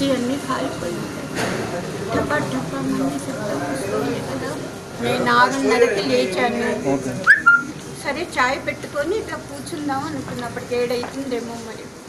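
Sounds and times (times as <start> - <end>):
high whistle-like chirp: 7.3 - 7.8.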